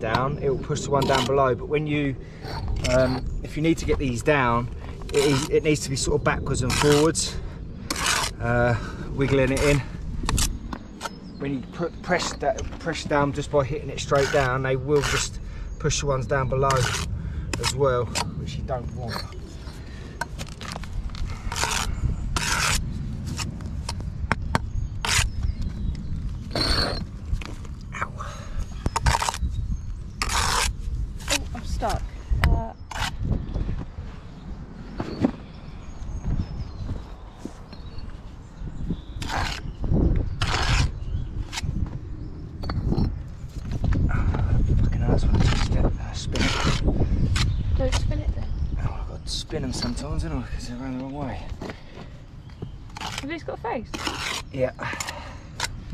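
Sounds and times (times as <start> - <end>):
low rumble: 0.0 - 50.7
trowel scraping mortar: 0.8 - 1.5, 2.4 - 3.2, 5.1 - 7.3, 7.9 - 8.6, 12.2 - 18.3, 20.4 - 23.5, 26.5 - 27.1, 30.2 - 31.8, 39.2 - 41.6, 45.3 - 48.1, 52.9 - 55.8.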